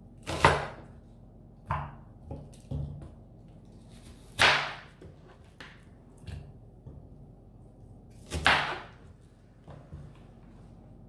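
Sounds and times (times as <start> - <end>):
knife chopping on cutting board: 0.2 - 0.8, 4.0 - 6.4, 8.2 - 9.1.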